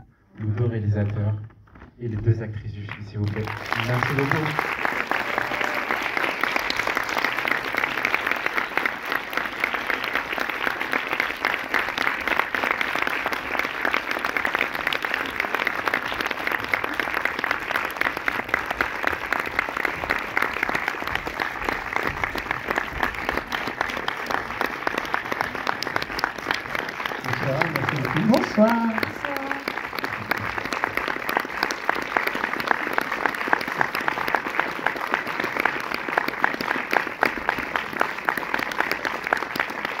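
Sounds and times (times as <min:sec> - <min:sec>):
audience applauding: 0:02.3 - 0:40.0.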